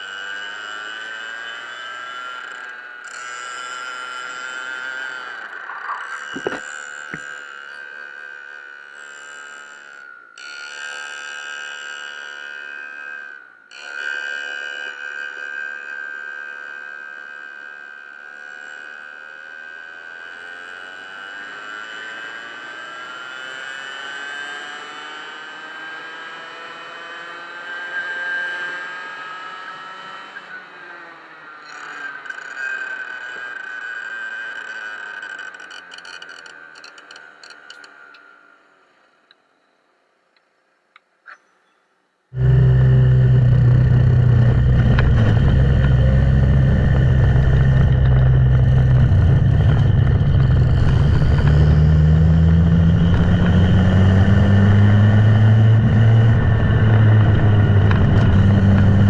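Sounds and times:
go-kart engine: 0.0s - 39.2s, 42.4s - 59.0s
knocks: 6.2s - 7.3s.

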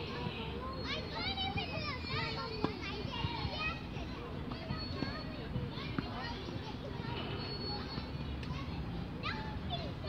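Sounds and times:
children shouting at play: 0.0s - 10.0s.

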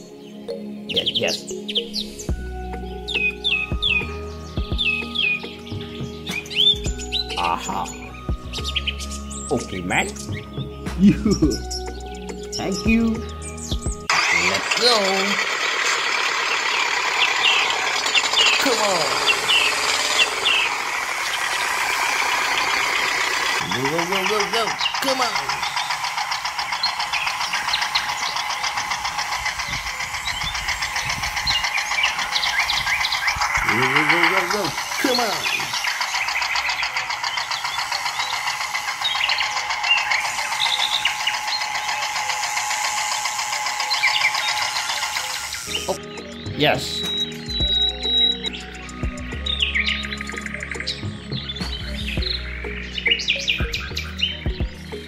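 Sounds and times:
toy motor and gears buzzing: 2.2s - 46.1s.

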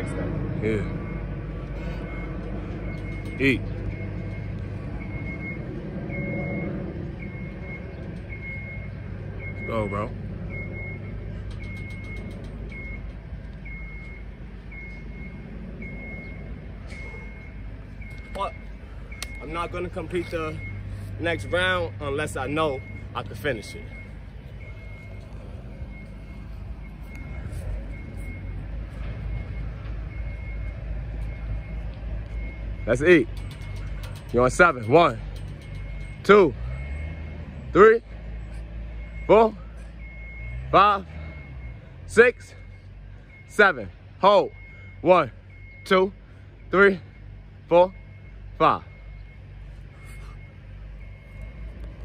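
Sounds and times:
street traffic rumble: 0.0s - 52.0s
faint high beep: 13.7s - 28.6s, 44.4s - 51.8s.

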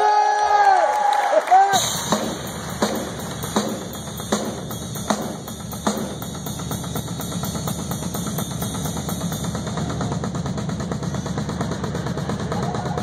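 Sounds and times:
drum roll on drum kit: 1.7s - 13.0s.

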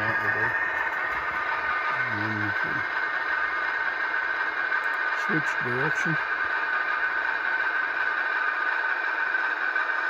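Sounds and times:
diesel engine sound from small speaker: 0.0s - 10.0s.

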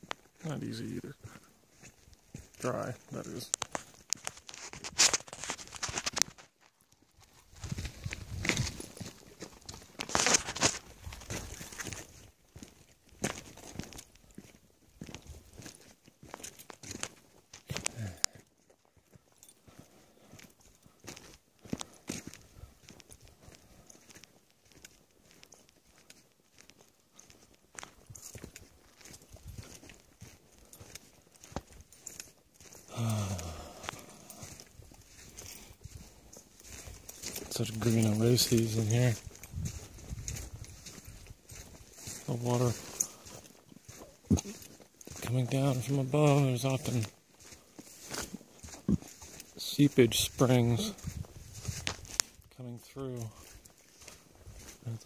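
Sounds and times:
footsteps on sandy dirt: 0.0s - 55.0s.

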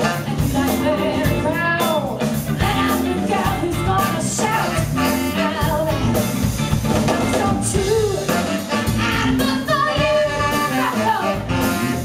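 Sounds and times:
horn section: 0.0s - 1.6s, 2.6s - 12.0s
soul band playing: 0.0s - 12.0s
woman singing lead: 0.0s - 12.0s.

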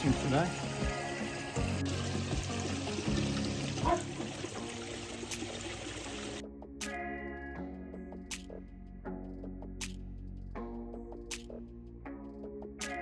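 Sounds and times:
water trickling and splashing: 0.0s - 6.4s
background music: 0.0s - 13.0s.

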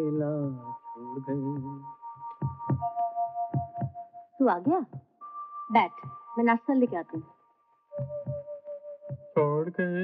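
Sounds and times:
film score held notes: 0.0s - 10.0s
heartbeat-like double thumps: 2.4s - 2.9s, 3.6s - 4.0s, 8.0s - 8.5s.

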